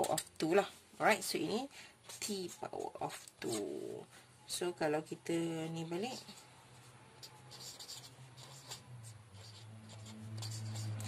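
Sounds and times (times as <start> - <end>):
marker pen writing on paper: 6.1 - 11.0.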